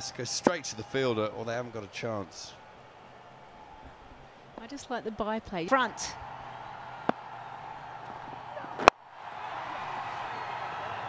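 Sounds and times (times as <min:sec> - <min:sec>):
stadium crowd noise: 0:00.0 - 0:11.0
cricket bat striking ball: 0:06.9 - 0:07.3, 0:08.0 - 0:09.0.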